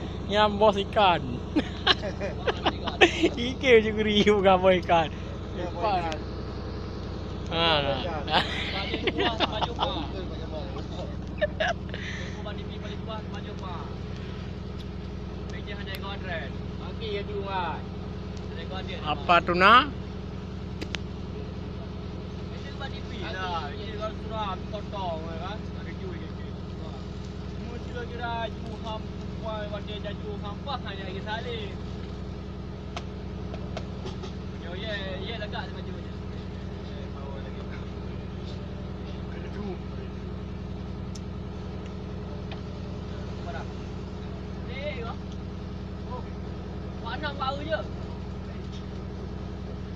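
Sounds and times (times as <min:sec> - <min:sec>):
boat engine humming: 0:00.0 - 0:49.9.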